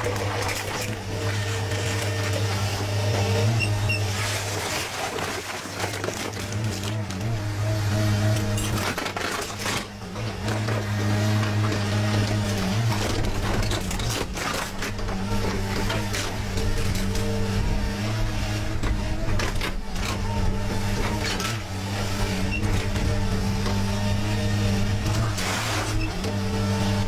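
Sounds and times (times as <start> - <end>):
excavator engine and hydraulic drone: 0.0 - 27.0.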